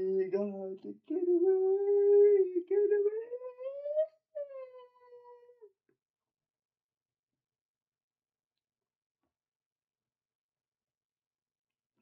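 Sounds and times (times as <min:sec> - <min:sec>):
man singing unaccompanied: 0:00.0 - 0:04.1.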